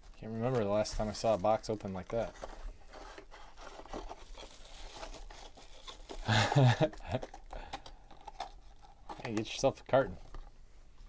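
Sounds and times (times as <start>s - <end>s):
cardboard box rustling and tearing: 2.2s - 6.2s
person laughing: 6.2s - 7.4s.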